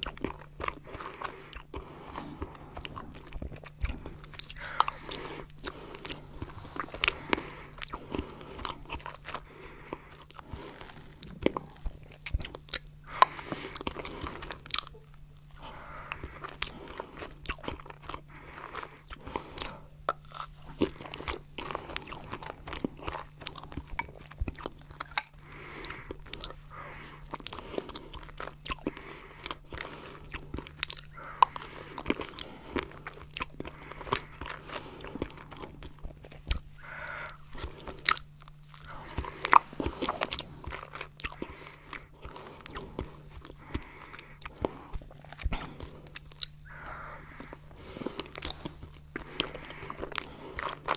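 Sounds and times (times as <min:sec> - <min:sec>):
crunchy chocolate bits: 0:00.0 - 0:50.9
wet chewing and smacking: 0:00.0 - 0:50.9.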